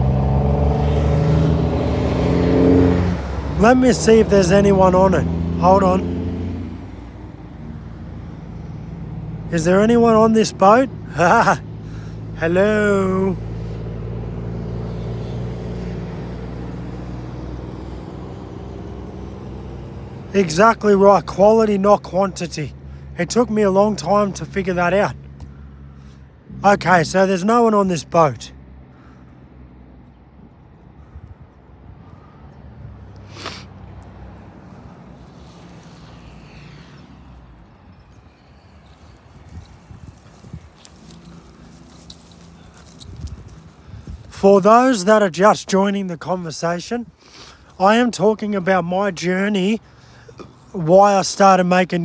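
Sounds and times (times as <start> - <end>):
footsteps outdoors: 20.4 - 51.6
low motor hum: 30.0 - 44.4
branches brushing and clicking: 33.2 - 37.0, 38.2 - 44.4.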